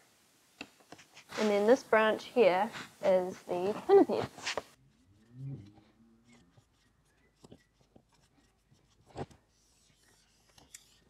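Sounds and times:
marker writing on whiteboard: 2.6 - 11.0.

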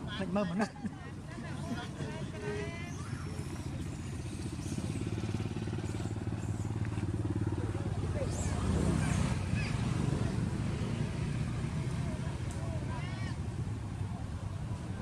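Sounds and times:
faint voices: 0.0 - 15.0
vehicle engine low drone: 1.8 - 15.0.

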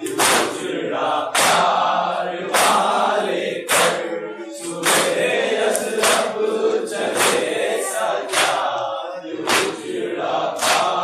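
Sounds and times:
hands slapping chests: 0.0 - 0.6, 1.3 - 1.8, 2.5 - 3.0, 3.7 - 4.0, 4.6 - 9.9, 10.5 - 11.0
men chanting in unison: 0.0 - 11.0.

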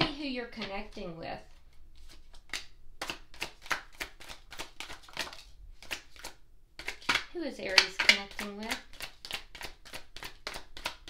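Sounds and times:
cards being shuffled: 0.6 - 11.0.

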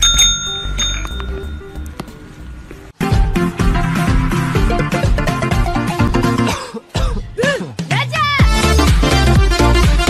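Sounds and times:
service bell ding: 0.0 - 2.4.

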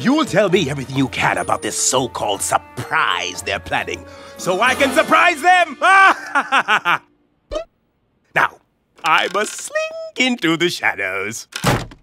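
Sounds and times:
man chuckling: 5.8 - 7.1.

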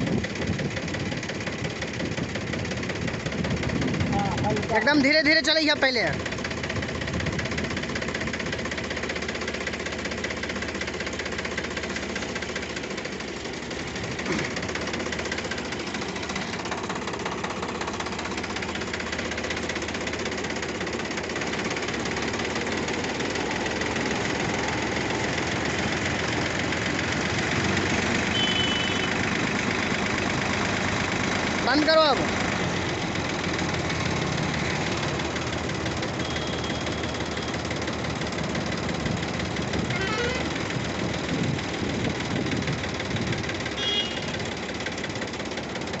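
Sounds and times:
thresher drum and fans turning: 0.0 - 46.0
tractor diesel engine running: 0.0 - 46.0.

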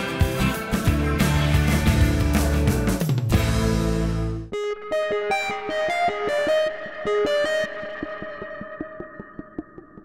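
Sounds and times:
light ticking beat: 5.4 - 10.0.

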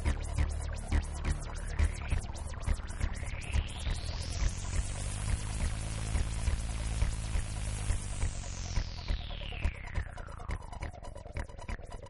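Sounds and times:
low drone: 0.0 - 12.0.

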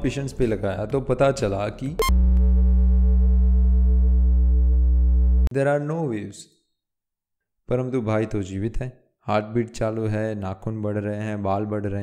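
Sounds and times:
low buzzing electronic tone: 2.0 - 5.5.

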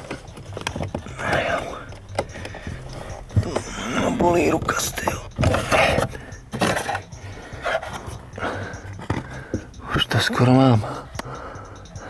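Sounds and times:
man breathing hard: 1.1 - 4.0, 7.1 - 9.9, 10.8 - 12.0.

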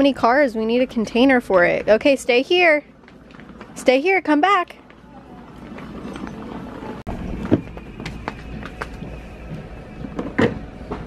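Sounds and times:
footsteps: 4.8 - 11.0.

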